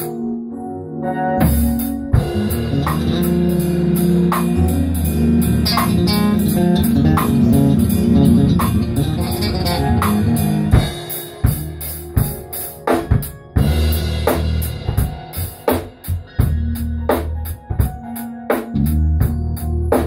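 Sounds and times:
keyboards: 0:00.0 - 0:20.0
electric bass line: 0:01.1 - 0:20.0
drum kit hits: 0:01.4 - 0:20.0.

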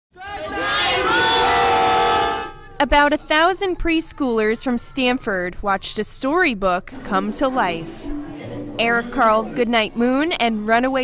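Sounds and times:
young children cheering: 0:00.2 - 0:02.8.

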